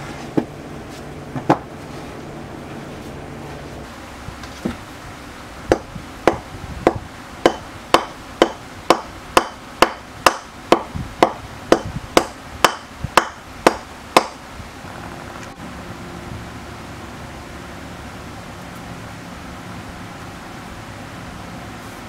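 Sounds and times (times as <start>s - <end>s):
steady low hum: 0.0s - 22.0s
hammer striking wooden block: 5.7s - 14.4s.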